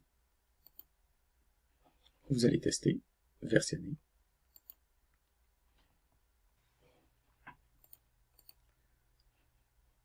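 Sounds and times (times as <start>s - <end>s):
faint computer mouse clicks: 0.6s - 0.9s, 4.5s - 5.2s, 7.4s - 9.3s.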